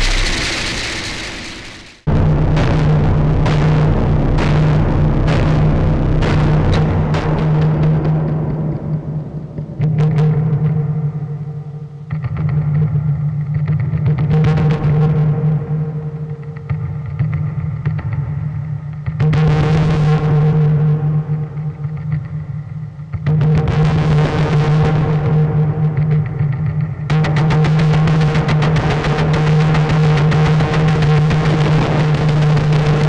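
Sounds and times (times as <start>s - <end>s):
loud distorted hit swells: 0.0s - 6.4s
distorted low drone: 0.0s - 10.7s.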